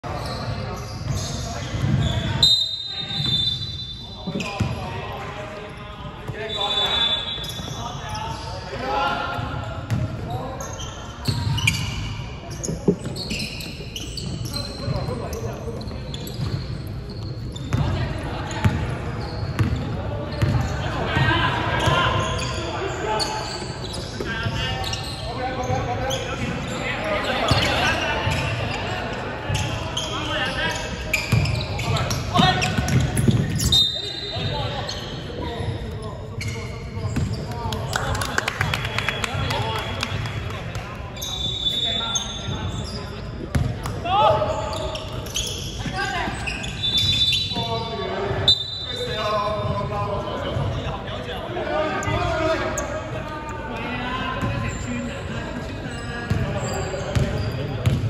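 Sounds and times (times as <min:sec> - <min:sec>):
shoe squeaks: 0:00.1 - 0:05.0, 0:05.6 - 0:08.8, 0:09.6 - 0:21.0, 0:21.7 - 0:37.7, 0:41.1 - 0:58.0.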